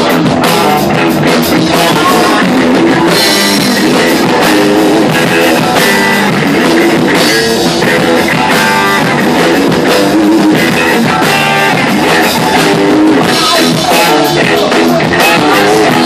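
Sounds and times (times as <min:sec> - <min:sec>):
distorted electric guitar: 0:00.0 - 0:16.0
drum kit: 0:00.0 - 0:16.0.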